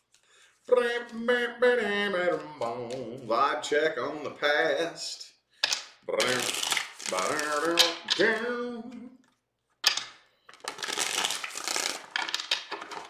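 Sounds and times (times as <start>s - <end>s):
cards being riffle-shuffled: 5.7s - 8.5s, 10.5s - 13.0s.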